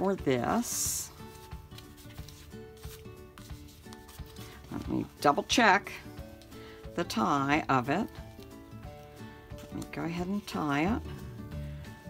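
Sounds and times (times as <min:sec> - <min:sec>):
quiet background music: 0:00.0 - 0:12.0
paper rustles and taps: 0:01.2 - 0:05.1, 0:08.1 - 0:10.1.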